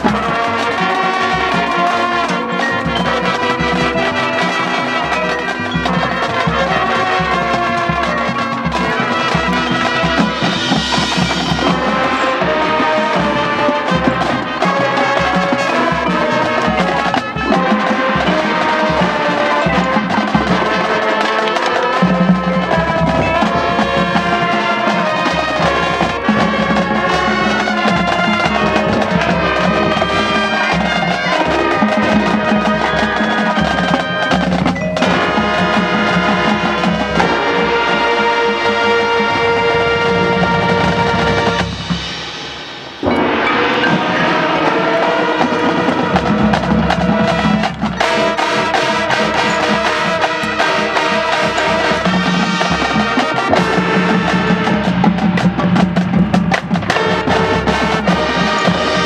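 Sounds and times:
marching band playing: 0.0 - 59.0
marching percussion: 0.0 - 59.0.

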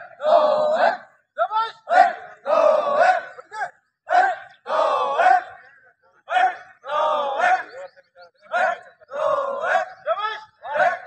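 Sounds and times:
men shouting drill cadence: 0.0 - 7.8, 8.4 - 11.0.

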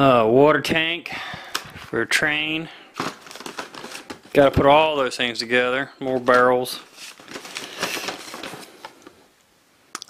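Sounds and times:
plastic packaging rustling: 1.4 - 9.3.

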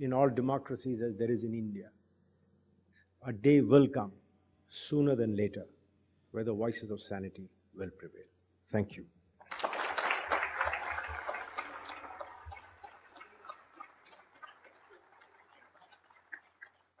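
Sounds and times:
audience applauding: 9.4 - 17.0.

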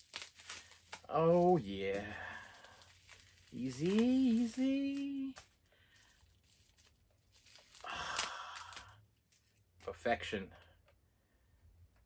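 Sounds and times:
plastic wrapping crinkling and tearing: 0.0 - 9.9.

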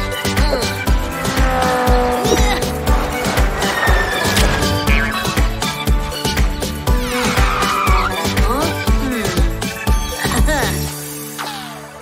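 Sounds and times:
upbeat background music: 0.0 - 12.0
toy race car zooming: 1.0 - 5.3
tyre squeal: 1.5 - 5.2, 6.9 - 8.2.

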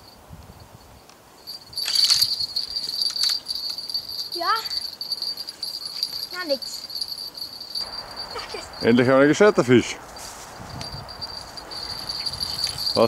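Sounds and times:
fishing rod bell jingling: 1.4 - 9.0, 10.6 - 13.0.

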